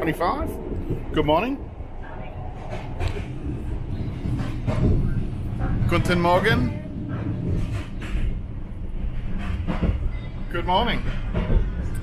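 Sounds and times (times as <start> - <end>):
train wheels rumbling on track: 0.0 - 12.0.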